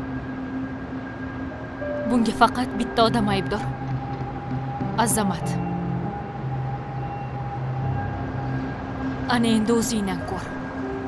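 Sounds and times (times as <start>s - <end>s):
sustained synth pad chord: 0.0s - 11.0s.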